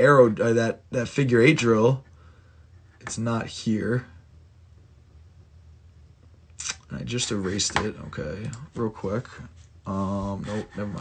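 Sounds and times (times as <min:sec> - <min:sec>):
faint low hum: 0:00.0 - 0:11.0
person speaking: 0:06.6 - 0:11.0.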